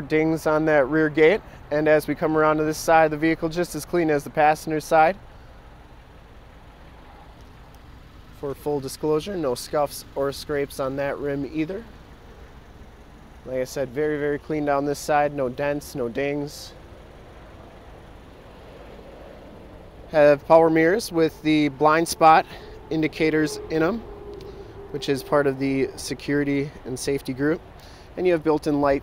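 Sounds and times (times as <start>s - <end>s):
faint outdoor hiss: 0.0s - 29.0s
faint rumble: 10.1s - 28.1s.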